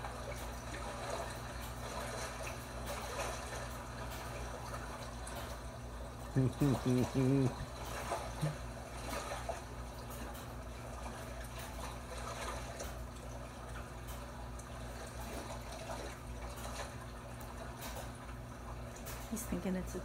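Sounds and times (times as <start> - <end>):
low steady hum: 0.0 - 20.0
water sound from television: 0.0 - 20.0.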